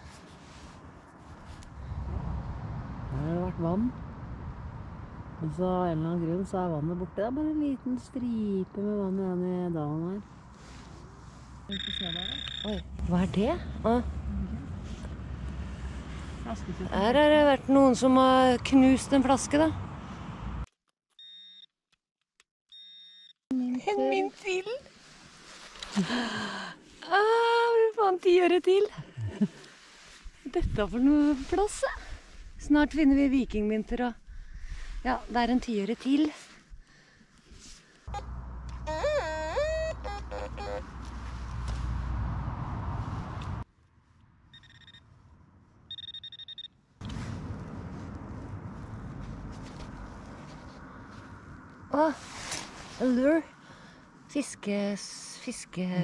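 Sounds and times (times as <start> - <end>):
low rumbling microphone noise: 0.0 - 11.8, 47.0 - 54.3
metal detector beeps: 11.7 - 12.9, 21.1 - 21.7, 22.7 - 23.4, 44.5 - 45.0, 45.9 - 46.8.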